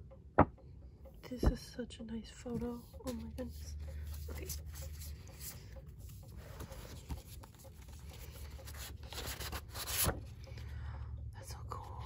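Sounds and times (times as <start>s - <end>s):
paper pages rustling: 2.8s - 10.4s
page flip: 8.7s - 10.2s.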